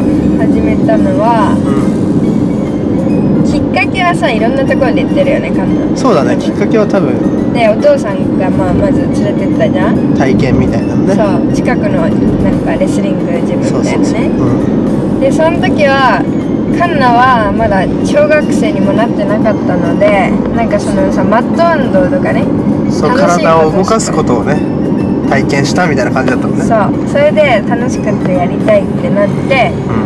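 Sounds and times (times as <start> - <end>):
people talking in car: 0.0 - 30.0
road and engine hum: 0.0 - 30.0.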